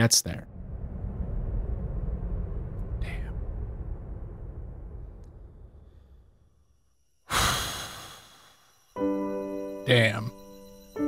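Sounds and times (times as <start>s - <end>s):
man sighing: 7.3s - 8.4s.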